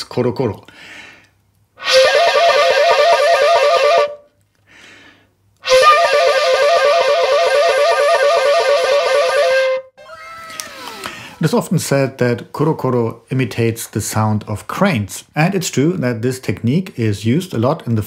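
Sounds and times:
faint breath: 0.7 - 1.4, 4.6 - 5.4, 10.8 - 11.4
warbling bamboo flute: 1.8 - 4.2, 5.6 - 11.0.

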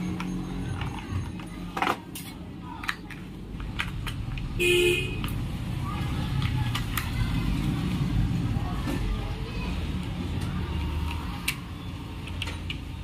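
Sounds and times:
street traffic rumble: 0.0 - 13.0.

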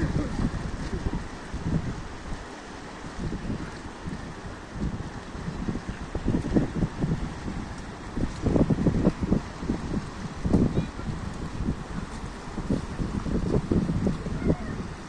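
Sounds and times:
fast-flowing river rushing: 0.0 - 15.0
wind buffeting microphone: 0.0 - 15.0.

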